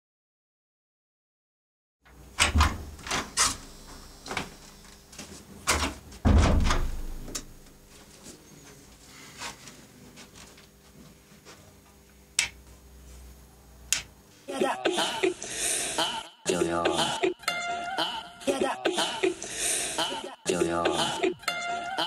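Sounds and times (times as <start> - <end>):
electrical hum: 2.1 - 22.0
heavy thump: 6.2 - 7.3.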